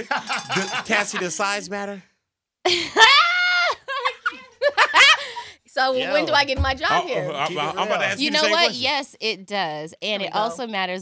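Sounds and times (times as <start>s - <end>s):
woman laughing: 2.7s - 5.5s
woman squealing: 3.0s - 4.4s.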